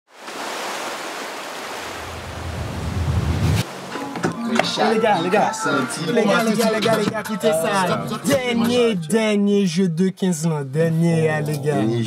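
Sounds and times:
wind: 0.1 - 4.5
ocean surf: 0.1 - 7.1
low rumble: 2.1 - 3.6.

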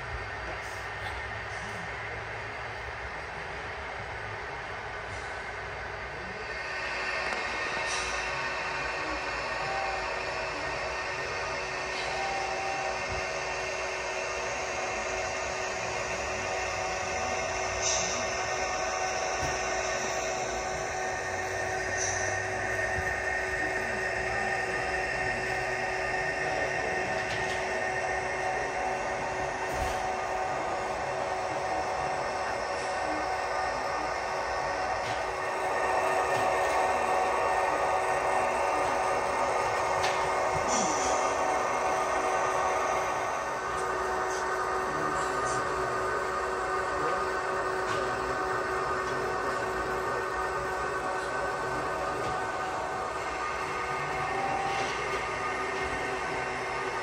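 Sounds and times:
model train running: 0.0 - 57.0
steady tones: 0.0 - 57.0.

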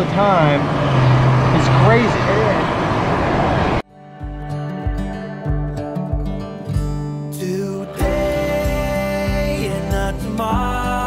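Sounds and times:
guitar music with bass line: 3.9 - 11.0.

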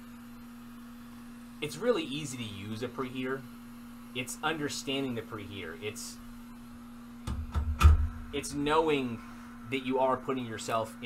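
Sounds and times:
knocks and thumps from handling: 7.2 - 8.2.

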